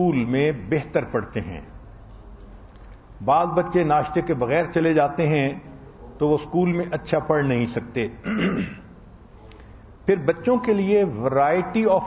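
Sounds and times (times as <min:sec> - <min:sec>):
man clearing his throat: 0:08.2 - 0:08.9.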